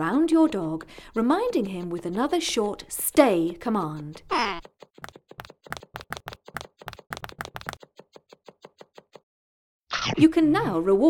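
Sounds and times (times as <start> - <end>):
rapid light sharp clicks: 0.5 - 9.2.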